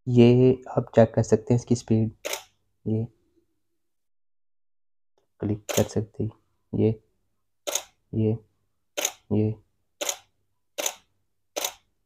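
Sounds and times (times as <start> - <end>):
camera shutter clicks: 7.7 - 7.9, 10.8 - 11.0, 11.6 - 11.8.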